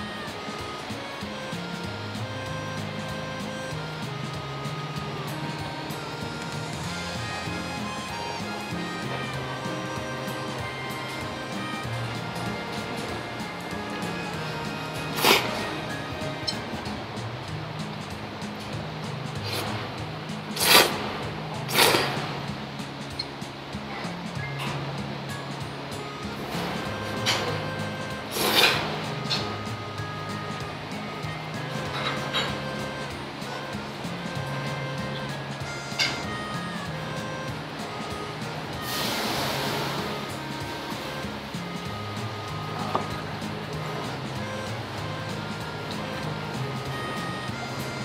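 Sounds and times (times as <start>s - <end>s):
background music with bass line: 0.0s - 48.0s.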